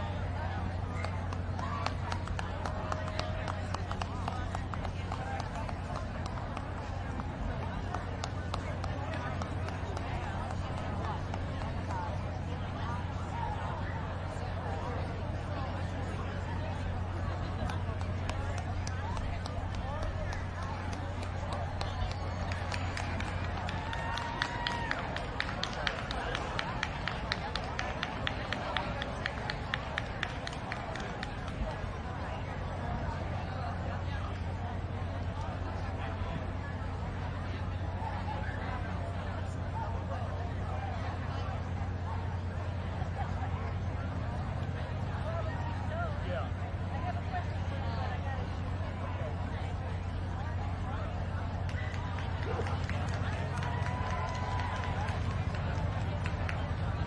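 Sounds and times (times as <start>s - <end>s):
distant voices: 0.0s - 57.0s.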